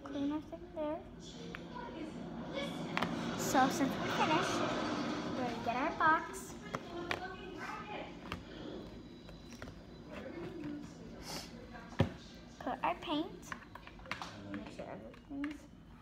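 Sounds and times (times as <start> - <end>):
indistinct voices: 0.0 - 8.9.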